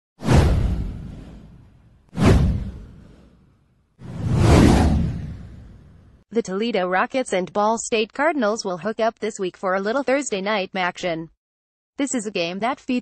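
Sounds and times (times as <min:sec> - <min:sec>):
whoosh sound effects: 0:00.2 - 0:06.2.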